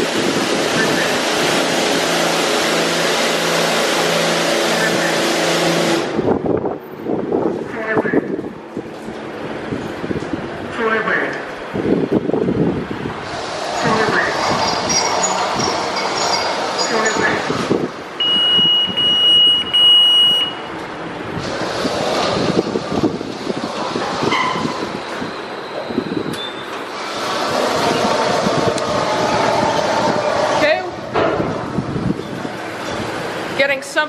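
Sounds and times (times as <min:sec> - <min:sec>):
car wash water spraying: 0:00.0 - 0:07.5, 0:11.6 - 0:34.0
high beep: 0:18.2 - 0:20.7, 0:26.4 - 0:26.8.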